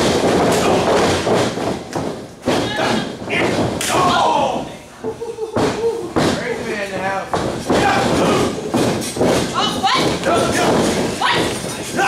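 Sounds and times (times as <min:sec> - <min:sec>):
bodies thudding on ring mat: 0:00.0 - 0:04.7, 0:05.5 - 0:12.0.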